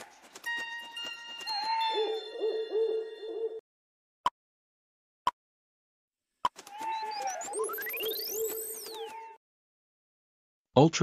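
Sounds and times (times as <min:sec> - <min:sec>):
cartoon owl hooting: 0:01.5 - 0:03.6, 0:06.6 - 0:09.4.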